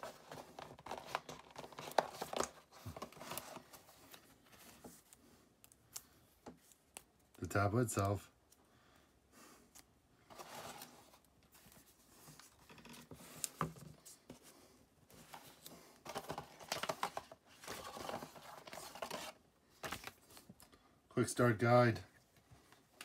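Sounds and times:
packaging rustling and scraping: 0.0s - 5.1s, 10.2s - 14.5s, 15.1s - 20.6s.

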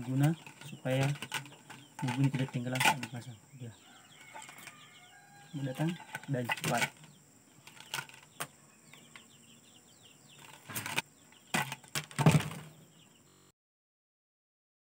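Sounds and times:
plastic fish trap knocks and rustles: 0.0s - 3.2s, 5.8s - 8.5s, 10.4s - 12.8s
faint bird chirps: 0.0s - 11.6s, 12.3s - 13.5s.

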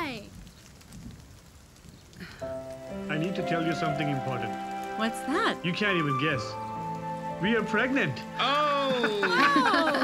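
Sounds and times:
light rain: 0.0s - 10.0s
film score music: 2.4s - 10.0s.

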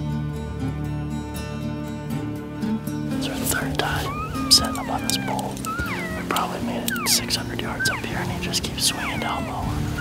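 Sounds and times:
background music with low notes: 0.0s - 10.0s
high whistled elk calls: 3.8s - 10.0s.

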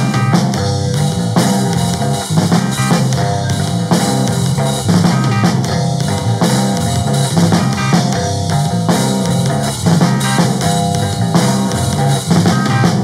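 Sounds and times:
drum kit: 0.0s - 13.0s
guitar: 0.0s - 13.0s.

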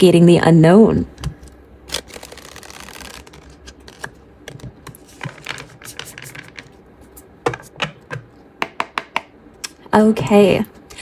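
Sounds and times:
cards being shuffled: 1.9s - 7.8s
cards clicking and tapping: 2.0s - 6.8s, 7.4s - 9.3s.

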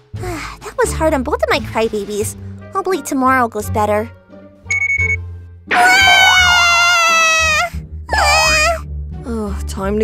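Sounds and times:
soft background music: 0.0s - 10.0s
short high beep: 4.7s - 5.2s
baby crying: 5.8s - 8.8s.

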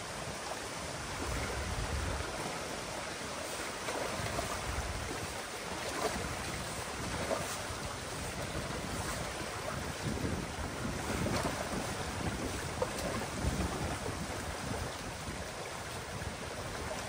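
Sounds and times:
water rushing and churning: 0.0s - 17.0s
wind buffeting microphone: 0.0s - 17.0s
faint splashes from a rake: 2.3s - 10.2s, 10.9s - 15.2s.

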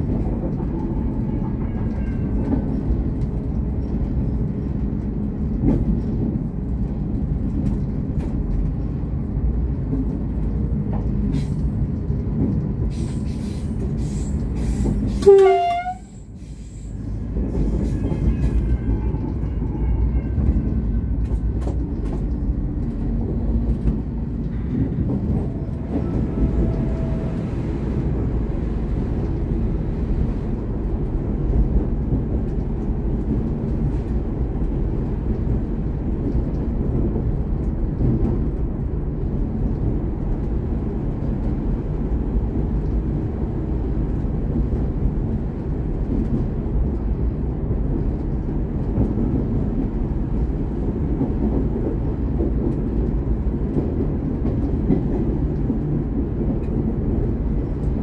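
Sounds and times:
diesel railcar rumbling in tunnel: 0.0s - 58.0s.

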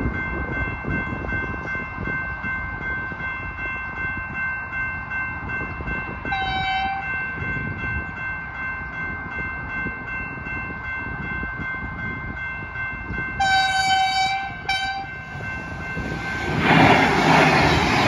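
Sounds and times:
train horn blasts: 6.3s - 7.1s, 13.4s - 15.2s.

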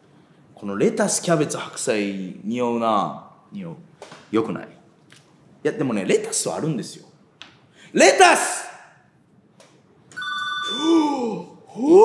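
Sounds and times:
electronic chime: 10.2s - 11.1s
man's surprised exclamation: 10.6s - 12.0s.

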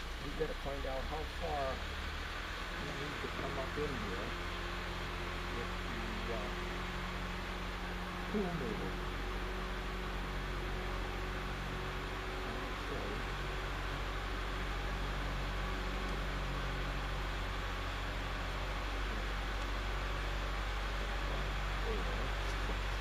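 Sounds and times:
low mechanical hum: 0.0s - 23.0s.

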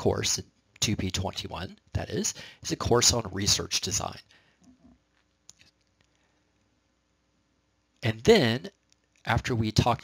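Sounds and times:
man speaking: 0.0s - 4.3s, 8.0s - 10.0s.

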